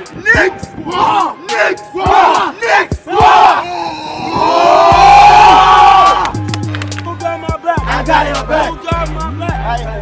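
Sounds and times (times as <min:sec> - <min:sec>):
young men shouting together: 0:00.2 - 0:06.3, 0:07.8 - 0:08.8.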